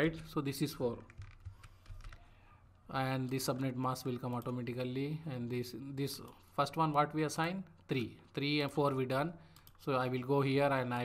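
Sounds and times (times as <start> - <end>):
computer keyboard keystrokes: 1.0 - 2.3.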